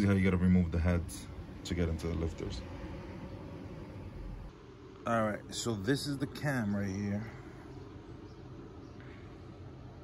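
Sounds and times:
low rumble: 0.6s - 4.6s.

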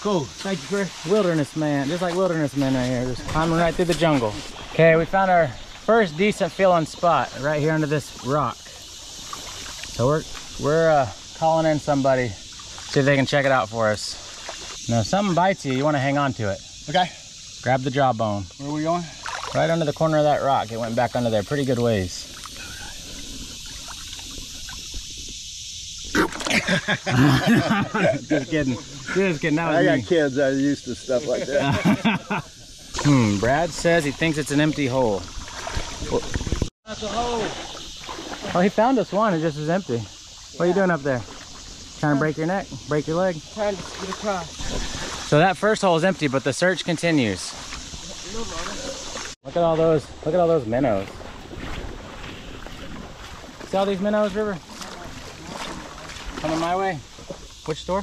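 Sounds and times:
steady high hiss: 0.0s - 35.4s, 36.5s - 51.0s
water splashing: 0.0s - 58.0s
people laughing loudly: 26.4s - 29.6s, 31.2s - 32.6s
wind rumbling on microphone: 32.6s - 36.7s, 50.9s - 53.7s.

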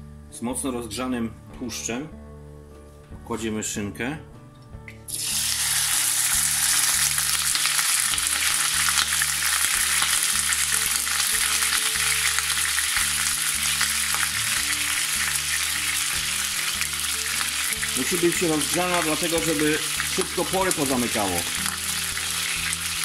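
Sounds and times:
meat sizzling in a frying pan: 5.1s - 23.0s.

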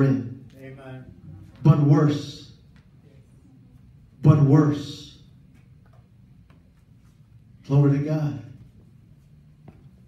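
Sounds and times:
man's amplified voice: 0.0s - 2.7s, 4.2s - 5.3s, 7.6s - 8.7s.

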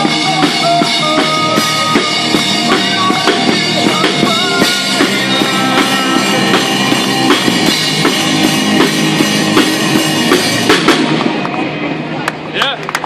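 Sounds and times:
rock music with guitar and drums: 0.0s - 12.1s.

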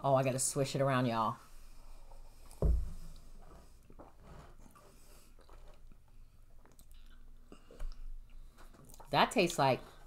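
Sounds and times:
dull thump: 2.6s - 3.1s.

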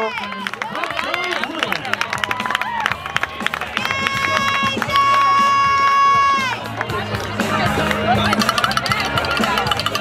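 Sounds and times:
crowd noise: 0.0s - 10.0s
people clapping: 0.0s - 10.0s.

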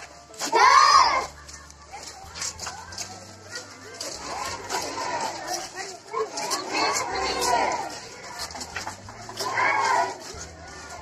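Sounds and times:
children shouting: 0.4s - 11.0s.

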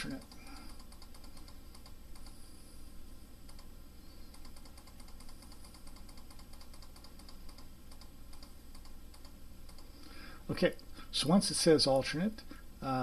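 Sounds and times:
computer controls clicking: 0.0s - 2.4s, 3.4s - 9.9s
low steady hum: 0.0s - 13.0s.

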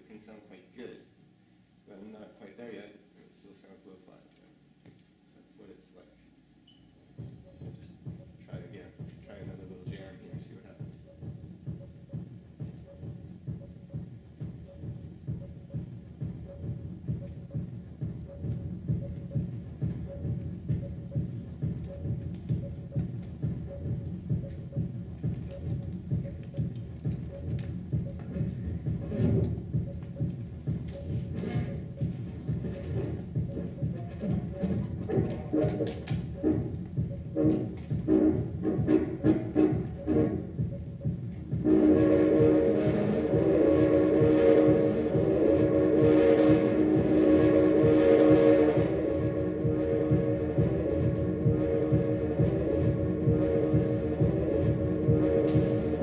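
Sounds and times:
repeating low pulse: 7.1s - 56.0s.

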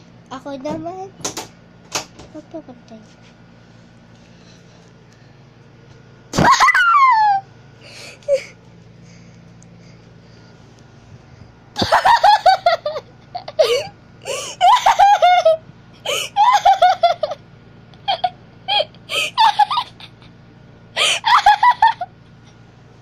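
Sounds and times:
person laughing hard: 11.8s - 17.4s, 18.0s - 20.3s, 21.0s - 22.1s.

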